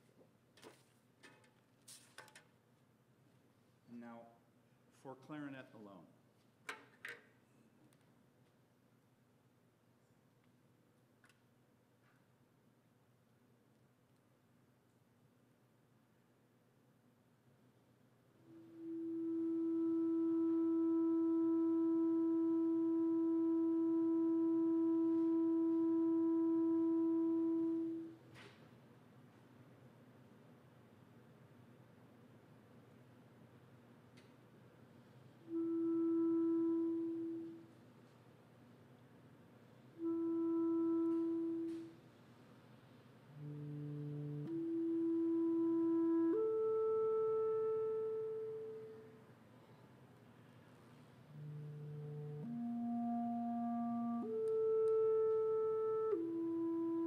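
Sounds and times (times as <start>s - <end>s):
clarinet long steady note: 18.3s - 28.4s, 35.4s - 38.2s, 39.7s - 42.3s, 43.2s - 49.8s, 50.9s - 57.0s.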